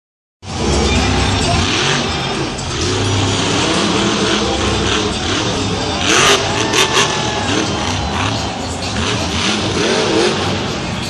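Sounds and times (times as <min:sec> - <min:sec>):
truck engine revving: 0:00.4 - 0:11.0.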